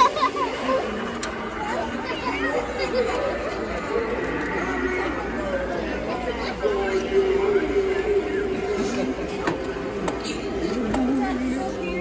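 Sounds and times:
people laughing: 0:00.0 - 0:01.1
chatter of several people: 0:00.0 - 0:12.0.

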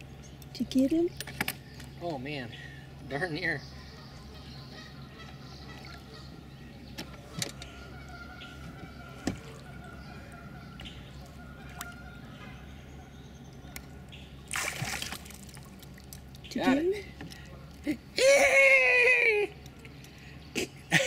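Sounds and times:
steady low hum: 0:00.0 - 0:21.0
water sloshing and splashing: 0:08.7 - 0:12.3, 0:14.3 - 0:17.9
loud splash: 0:14.5 - 0:15.7.

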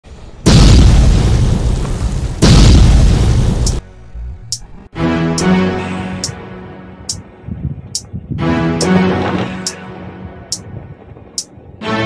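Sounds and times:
deep cinematic boom hits: 0:00.5 - 0:03.8.

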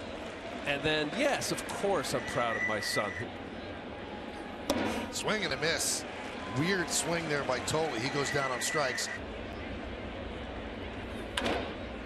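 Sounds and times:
murmur of a crowd: 0:00.0 - 0:12.0.

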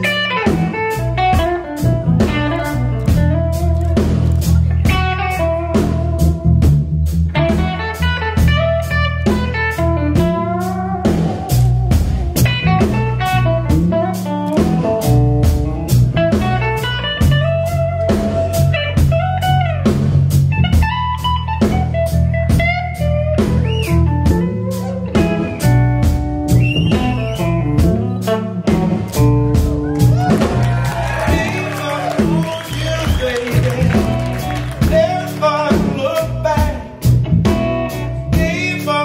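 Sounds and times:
drum kit steady beat: 0:00.0 - 0:39.0
electric bass: 0:00.0 - 0:39.0
electric guitar bending notes: 0:00.0 - 0:39.0.

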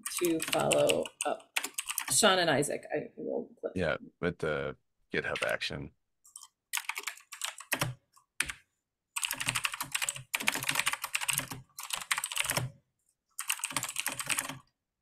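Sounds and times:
fast keyboard typing: 0:00.0 - 0:02.4, 0:05.4 - 0:05.6, 0:06.4 - 0:08.6, 0:09.2 - 0:12.7, 0:13.4 - 0:14.6.

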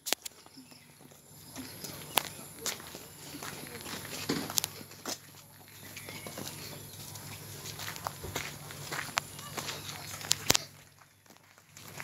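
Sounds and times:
footsteps tapping on a path: 0:00.0 - 0:12.0.

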